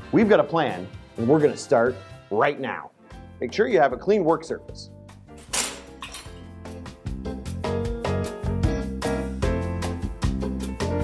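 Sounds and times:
faint background music: 0:00.0 - 0:09.0
metal clink on steel tabletop: 0:05.4 - 0:06.5.

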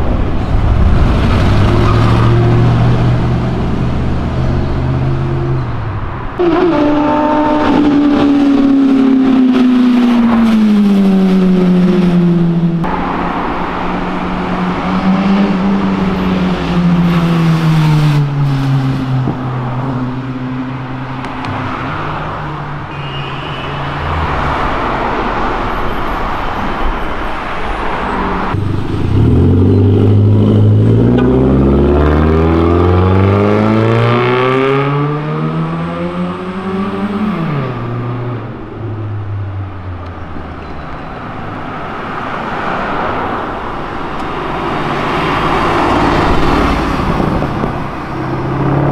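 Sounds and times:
car engines passing at speed: 0:00.0 - 0:23.0, 0:23.8 - 0:48.9
engine accelerating hard: 0:28.6 - 0:38.2.

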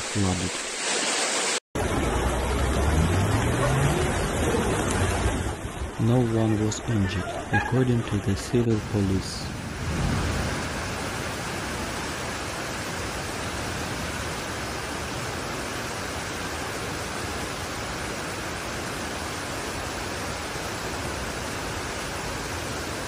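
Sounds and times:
torrential rain: 0:00.0 - 0:23.0.

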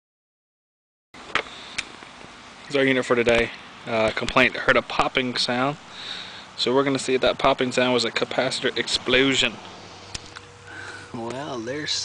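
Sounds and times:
background hiss: 0:01.2 - 0:12.0.

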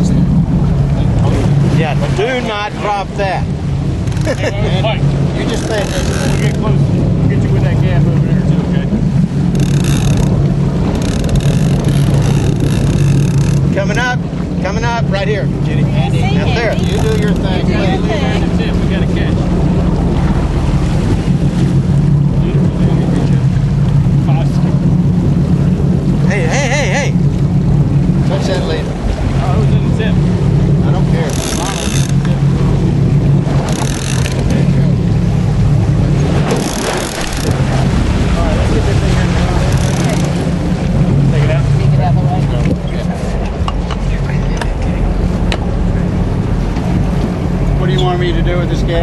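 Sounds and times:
boat engine droning: 0:00.0 - 0:49.0
wind and water noise: 0:00.0 - 0:49.0.

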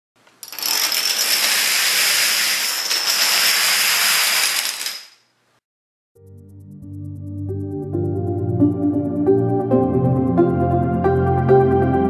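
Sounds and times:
plastic dominoes toppling: 0:00.3 - 0:05.3.

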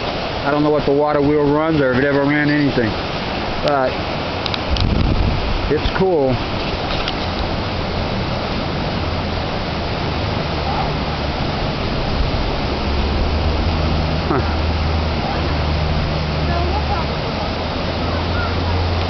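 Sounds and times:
rushing flowing water: 0:00.0 - 0:19.0.

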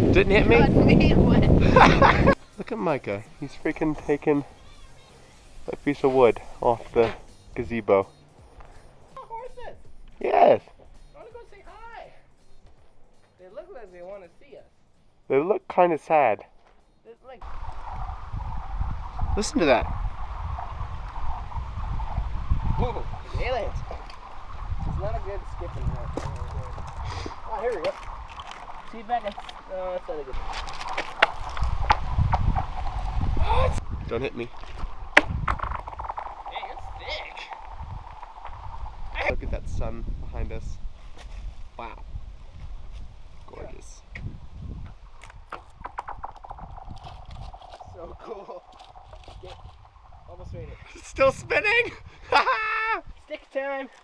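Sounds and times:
wind rumbling on microphone: 0:00.0 - 0:02.4, 0:17.4 - 0:54.0
stone skidding across ice: 0:23.2 - 0:33.6, 0:34.3 - 0:39.3, 0:45.1 - 0:50.3.

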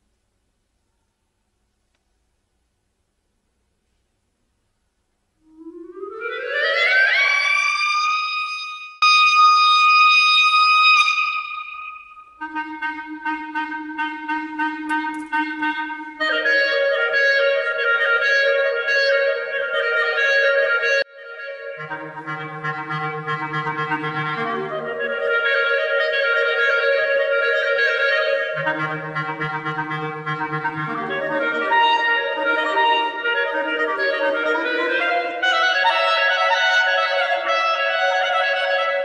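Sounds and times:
solo clarinet: 0:05.4 - 0:39.0.

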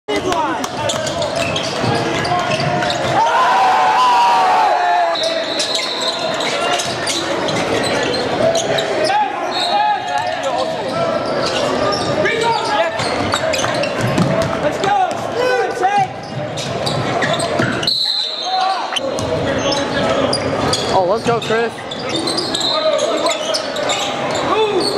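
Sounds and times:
people shouting and talking: 0:00.1 - 0:24.9.

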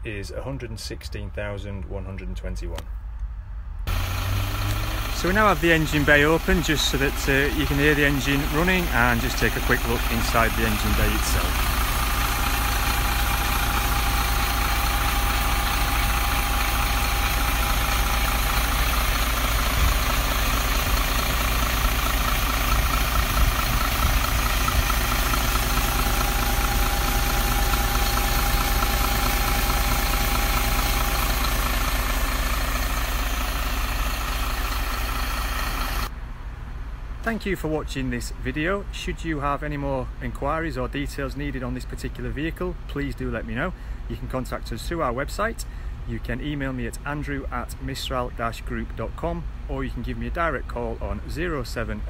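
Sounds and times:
diesel engine idling: 0:03.8 - 0:36.2.

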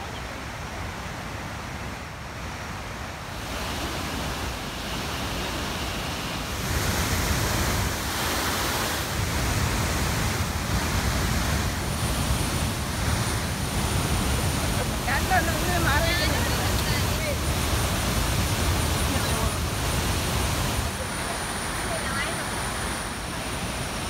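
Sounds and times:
waterfall rushing: 0:00.0 - 0:24.0
white-water river: 0:00.0 - 0:24.0.

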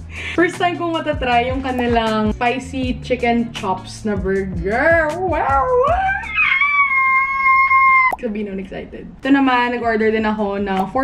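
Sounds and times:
woman squealing: 0:05.4 - 0:08.2.

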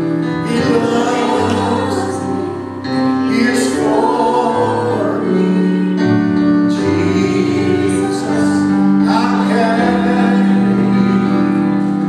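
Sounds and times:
group singing a worship song: 0:00.0 - 0:12.0.

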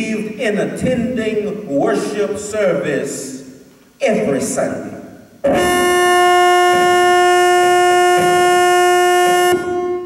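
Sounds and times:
church organ note: 0:05.4 - 0:10.0.

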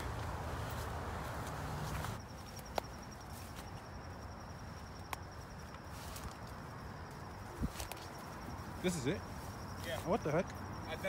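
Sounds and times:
footsteps through brush: 0:00.0 - 0:11.0
high steady insect trill: 0:00.0 - 0:11.0.

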